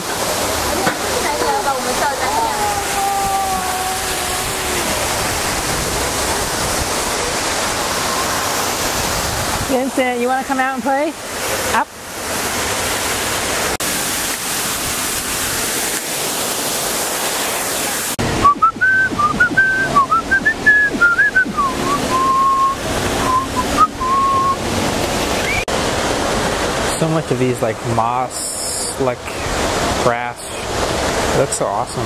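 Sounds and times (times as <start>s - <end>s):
indoor waterfall rushing: 0.0s - 32.0s
person whistling a tune: 18.4s - 24.6s.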